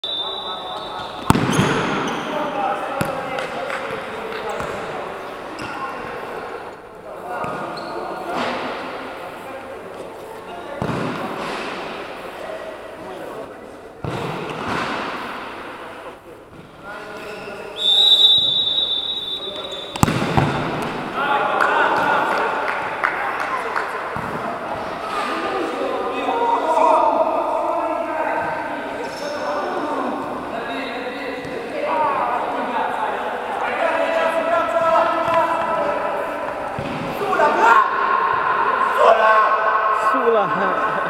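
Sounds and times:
high steady whistle: 0:00.0 - 0:01.3, 0:17.8 - 0:20.0
ball thuds in echoing hall: 0:00.9 - 0:06.2, 0:07.3 - 0:09.1, 0:10.7 - 0:12.1, 0:14.0 - 0:15.8, 0:19.6 - 0:25.6, 0:34.8 - 0:41.0
indistinct voices: 0:36.0 - 0:41.0.

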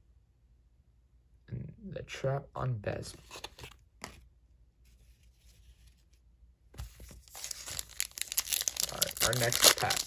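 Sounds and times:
foil wrapper crinkling and tearing: 0:07.2 - 0:10.0.

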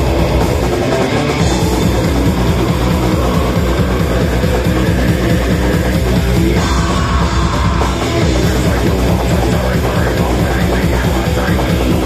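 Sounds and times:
death metal band playing live: 0:00.0 - 0:12.0.

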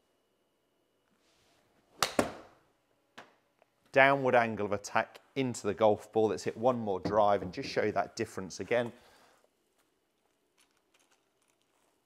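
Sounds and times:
golf club striking ball: 0:02.0 - 0:02.5
ball hitting impact screen: 0:02.0 - 0:02.6.

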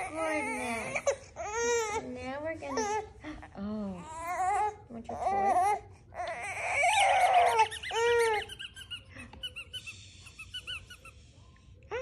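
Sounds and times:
rubber squeaky toy squeaking: 0:06.5 - 0:11.2.

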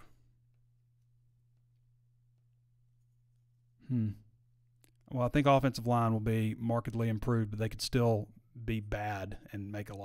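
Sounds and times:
man humming hmm: 0:03.8 - 0:04.3.

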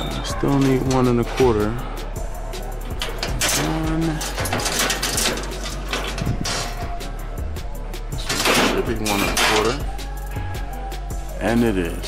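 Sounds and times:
steel bars scraping and clinking: 0:00.0 - 0:07.4, 0:08.2 - 0:10.2
faint background music: 0:00.0 - 0:12.0.

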